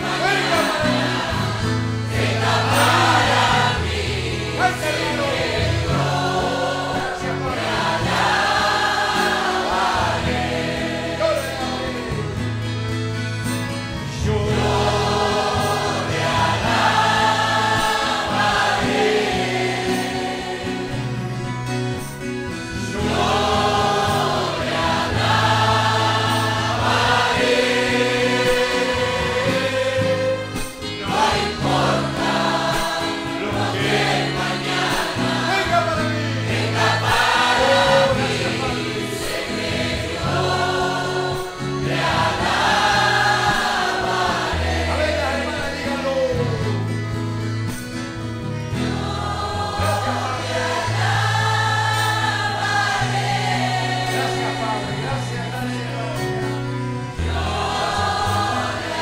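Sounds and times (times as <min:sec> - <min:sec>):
congregation singing: 0:00.0 - 0:59.0
instrumental accompaniment: 0:00.0 - 0:59.0.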